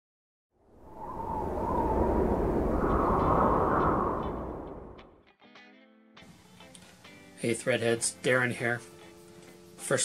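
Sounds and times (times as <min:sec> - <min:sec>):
rising whoosh: 0:00.6 - 0:05.2
low rumble: 0:00.8 - 0:05.1.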